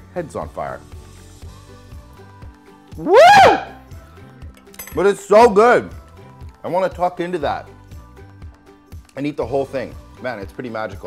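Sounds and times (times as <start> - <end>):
background music: 0.0 - 11.0
man whooping: 3.0 - 3.8.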